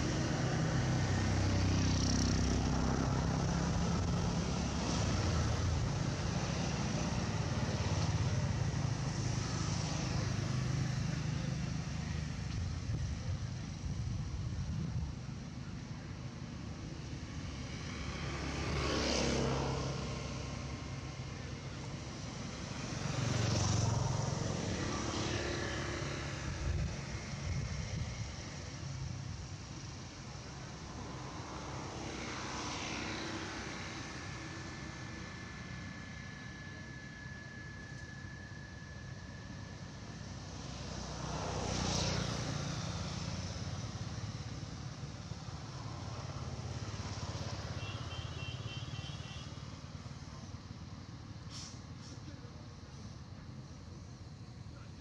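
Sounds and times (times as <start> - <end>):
motor vehicles passing by: 0.0 - 55.0.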